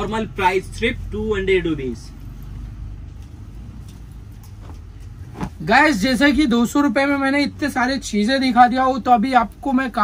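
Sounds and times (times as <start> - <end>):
fabric rustling: 3.4 - 6.2.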